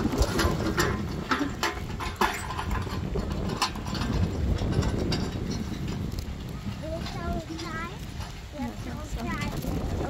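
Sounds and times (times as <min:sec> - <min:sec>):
metal hand trolley rattling: 0:00.0 - 0:10.0.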